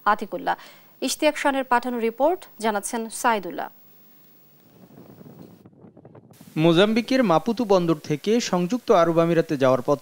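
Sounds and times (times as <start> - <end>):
wind buffeting microphone: 4.6 - 7.0.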